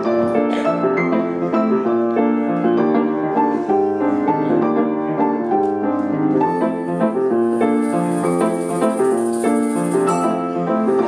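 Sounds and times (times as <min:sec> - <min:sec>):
gentle piano lullaby: 0:00.0 - 0:11.0
shaker hiss: 0:06.5 - 0:10.4.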